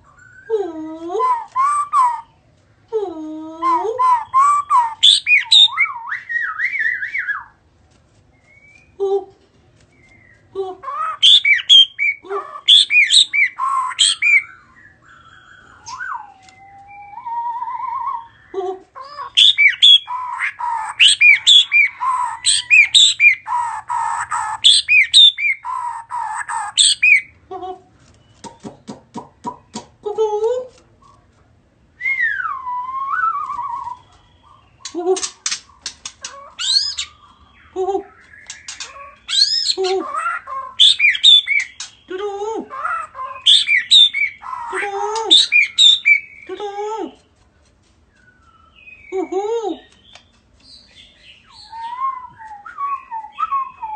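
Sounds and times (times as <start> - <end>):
bird whistled song: 0.0 - 0.5, 1.2 - 2.4, 3.7 - 7.6, 8.4 - 9.0, 9.9 - 18.6, 19.2 - 27.4, 32.0 - 42.1, 43.2 - 44.6, 45.2 - 46.5, 48.1 - 49.2, 49.8 - 53.9
bird singing whistled notes: 4.0 - 7.6, 48.1 - 49.2, 49.9 - 53.9
bird sharp clicks: 34.8 - 37.1, 38.3 - 39.4.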